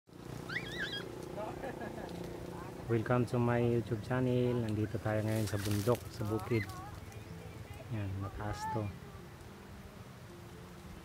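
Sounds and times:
faint bird chirps: 0.4s - 1.1s
warbling bird call: 0.4s - 1.6s.

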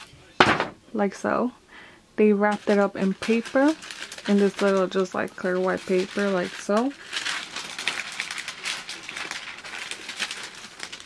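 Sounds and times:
tissue paper rustling: 2.4s - 11.0s.

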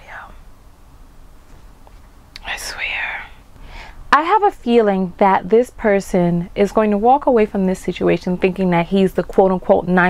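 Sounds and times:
woman whispering: 0.0s - 0.4s, 2.4s - 3.4s.

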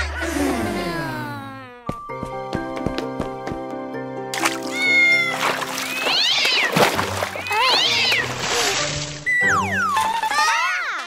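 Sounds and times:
light background music: 1.9s - 10.6s.

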